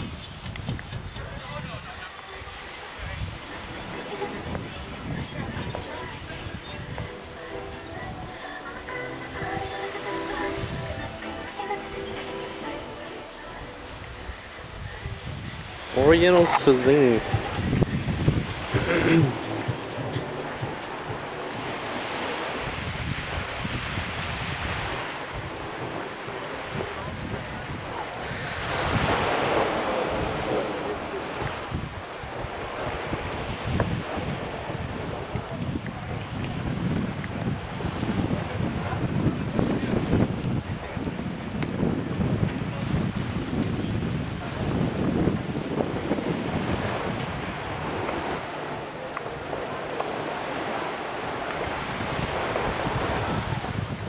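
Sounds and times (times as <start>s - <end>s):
wind buffeting microphone: 0.0s - 8.5s, 13.8s - 49.8s, 50.4s - 54.0s
surf breaking on rocks: 0.0s - 54.0s.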